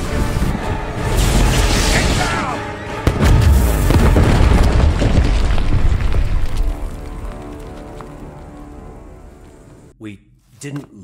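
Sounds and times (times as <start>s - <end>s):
deep rumbling boom: 3.0s - 7.3s.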